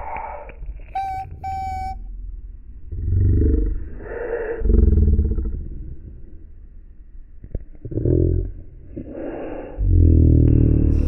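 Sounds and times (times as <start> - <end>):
short electronic beeps: 1.0 - 2.0
deep distorted rumbling: 9.8 - 11.0.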